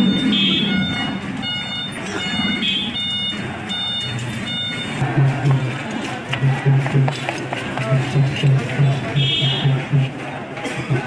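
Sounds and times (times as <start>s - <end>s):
electronic beeping tone: 0.0s - 5.0s
street noise murmur: 0.0s - 11.0s.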